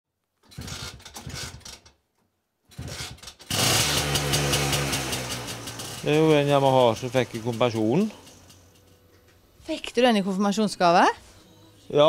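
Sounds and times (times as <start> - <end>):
motorcycle engine kick-started: 0.4 - 2.0, 2.7 - 8.9.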